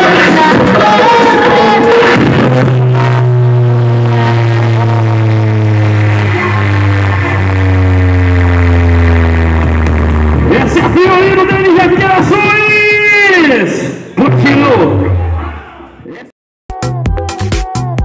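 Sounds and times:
deep bass note falling in pitch: 0.0 - 16.1
loud electronic music: 0.0 - 18.0.

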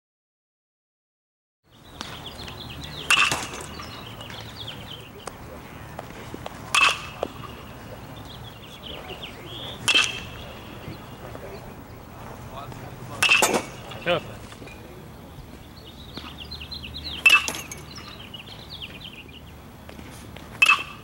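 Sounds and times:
baseball bat hitting ball: 1.9 - 8.1, 9.4 - 11.5, 12.7 - 14.7, 17.2 - 17.9, 20.6 - 21.0.

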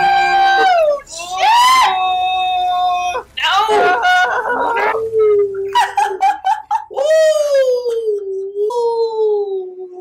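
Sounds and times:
person wailing howl: 0.0 - 6.2, 6.9 - 10.0.

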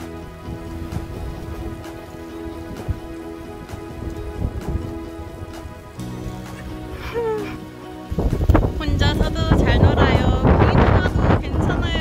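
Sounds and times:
crackling hissing noise: 0.0 - 11.4
soft background music chords: 0.0 - 12.0.

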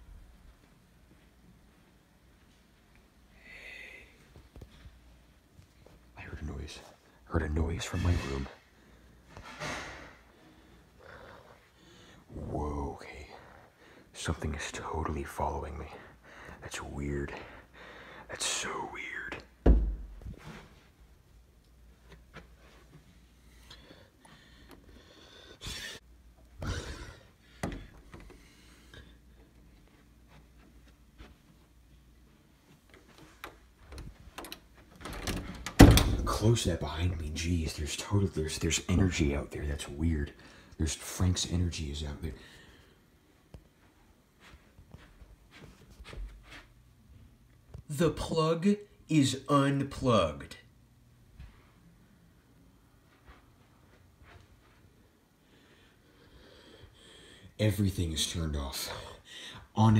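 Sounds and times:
faint room noise: 0.0 - 59.9
heavy thump: 19.6 - 20.2.

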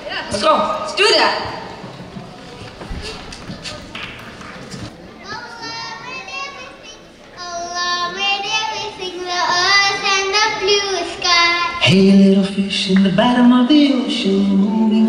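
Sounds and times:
children singing wordless vocals: 5.2 - 12.0.

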